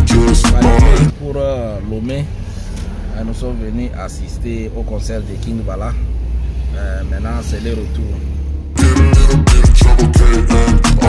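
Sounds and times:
car engine rumble: 0.0 - 11.0
road noise in car: 0.1 - 8.8
man speaking: 6.8 - 8.3.

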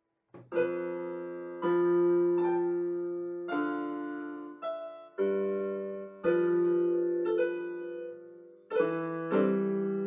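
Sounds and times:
keyboard piano chords: 0.3 - 10.0.

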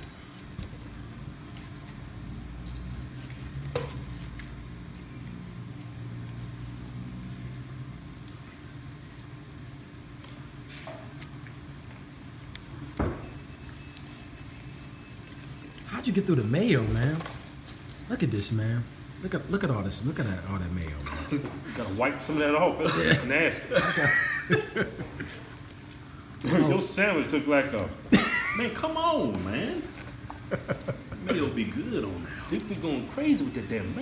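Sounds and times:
faint chewing: 0.0 - 15.9, 25.1 - 26.8
restaurant dining room hum: 0.0 - 34.0.

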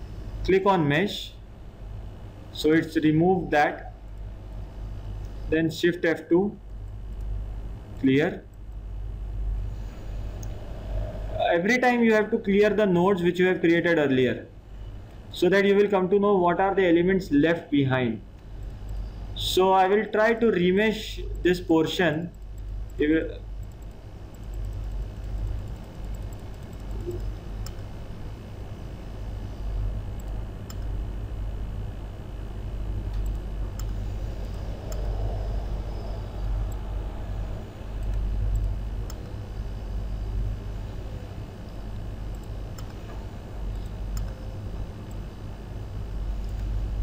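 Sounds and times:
low background hum: 0.0 - 47.0
computer mouse clicks: 23.6 - 27.9, 30.2 - 30.9, 33.1 - 35.1, 38.0 - 39.4, 42.3 - 44.4.

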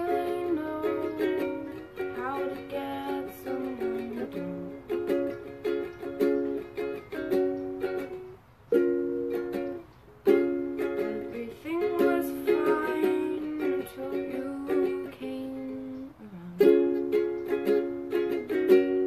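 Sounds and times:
young female voice singing softly: 0.0 - 5.3, 10.9 - 17.2
ukulele strumming chords: 0.0 - 19.0.

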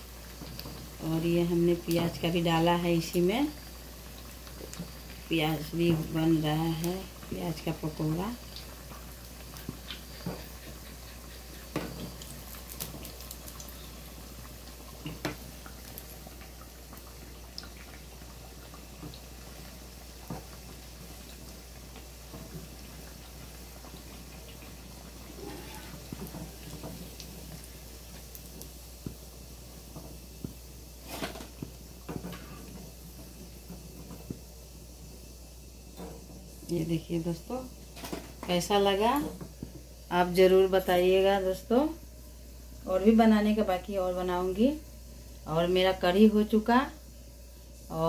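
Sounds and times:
food sizzling in hot oil: 0.0 - 48.0.

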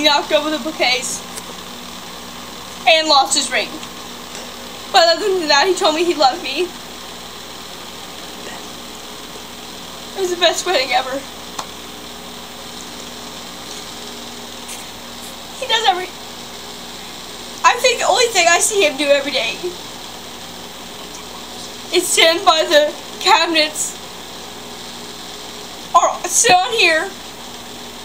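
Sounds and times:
voice: 0.0 - 1.5, 2.8 - 3.8, 4.4 - 6.8, 8.2 - 8.8, 10.2 - 11.3, 14.7 - 16.1, 17.6 - 19.8, 21.0 - 24.0, 26.0 - 27.2
background hiss: 0.0 - 28.0.

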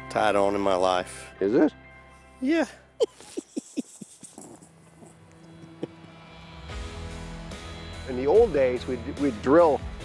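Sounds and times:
background music: 0.0 - 10.0
man laughing: 2.6 - 4.6, 5.5 - 6.0.

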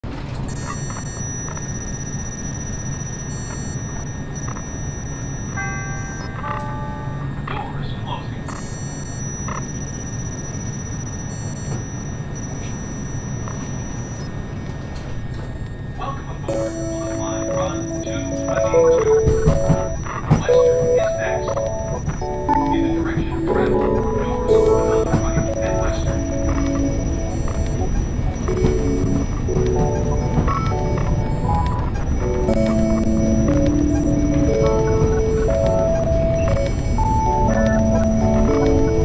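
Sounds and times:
descending electronic tones: 15.6 - 39.0
music with sustained notes: 16.5 - 39.0.

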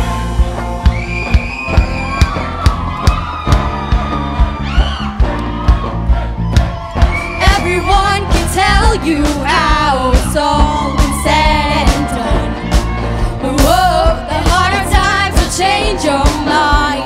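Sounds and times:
drum beat: 0.1 - 15.6.

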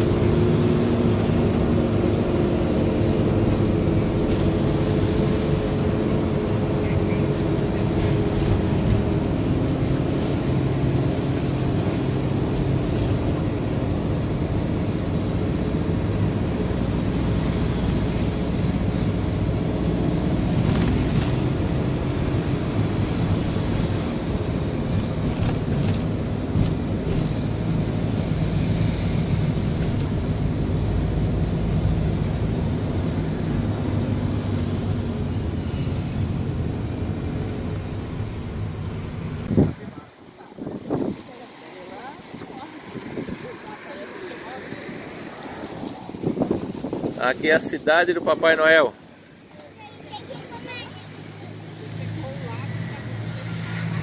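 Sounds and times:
vehicle engine drone: 0.0 - 47.2, 48.9 - 54.0
road noise: 0.0 - 54.0.

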